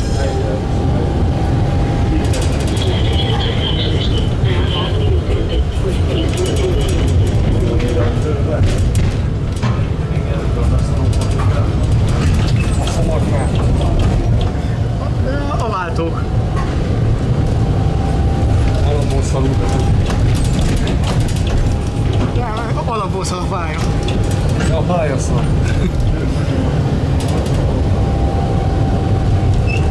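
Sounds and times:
tram rumbling on track: 0.0 - 29.9
wheels clicking over rail joints: 10.6 - 14.6, 18.7 - 22.8, 23.8 - 26.2.

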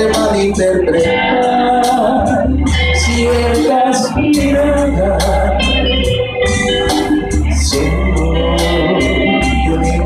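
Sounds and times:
organ-like keyboard chords: 0.0 - 10.0
steady bass: 0.0 - 10.0.

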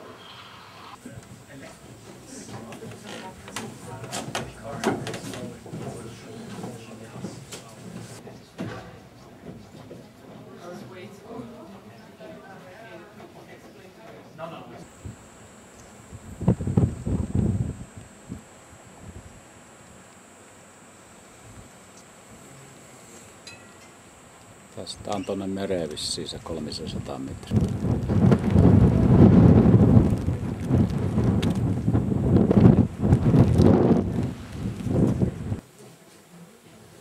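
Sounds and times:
wind buffeting microphone: 16.1 - 19.4, 26.7 - 35.6.

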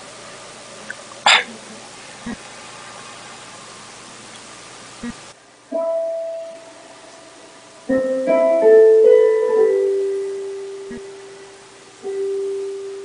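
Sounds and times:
room hiss: 0.0 - 13.0
piano held note: 5.7 - 13.0.

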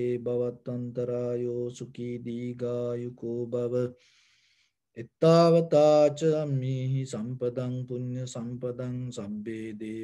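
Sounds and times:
man chanting in low voice: 0.0 - 4.0, 4.9 - 10.0.

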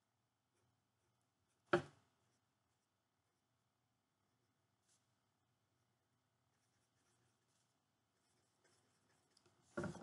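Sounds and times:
marker scratching on paper: 6.5 - 10.0
knock and paper rustle: 9.7 - 10.0.

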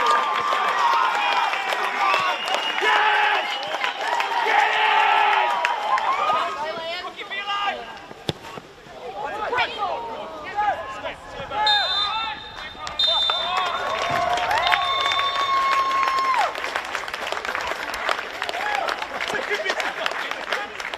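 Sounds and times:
players shouting: 0.0 - 16.7
referee's whistle blasts: 11.6 - 15.6.

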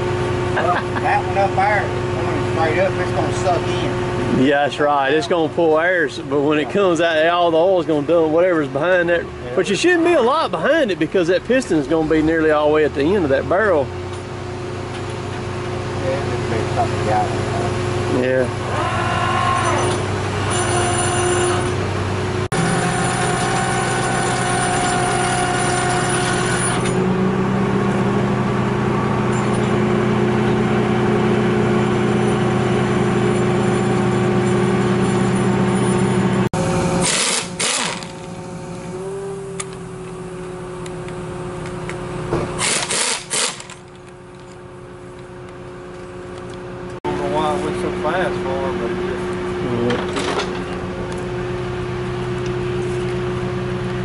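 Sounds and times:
diesel engine running: 0.0 - 54.0
short noisy bursts: 37.0 - 38.2, 42.6 - 43.8.

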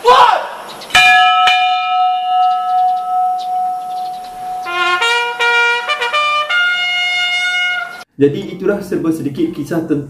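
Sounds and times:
ship's bell ringing: 1.0 - 7.4.

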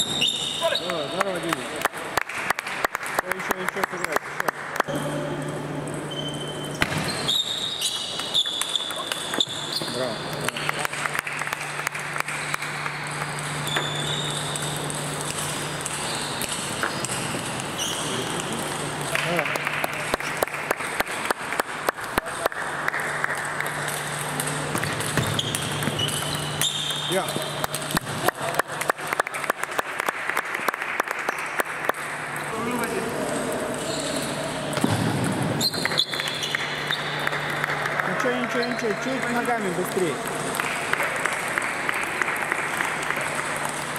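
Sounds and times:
voices in a large hall: 0.0 - 43.9
steady low hum: 8.2 - 30.3
table tennis balls clicking: 23.3 - 28.2.

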